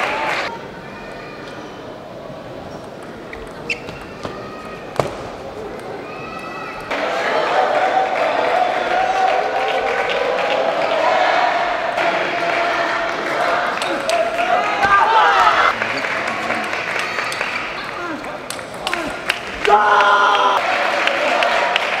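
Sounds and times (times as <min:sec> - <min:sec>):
crowd voices in a hall: 0:00.0 - 0:22.0.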